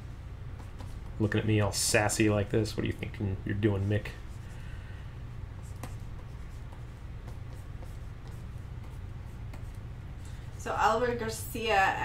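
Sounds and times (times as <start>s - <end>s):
steady low hum: 0.0s - 12.0s
stylus scratching on drawing tablet: 5.6s - 9.9s.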